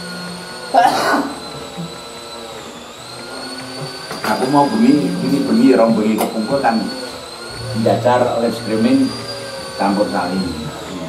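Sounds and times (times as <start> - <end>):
steady high whine: 0.0 - 11.0.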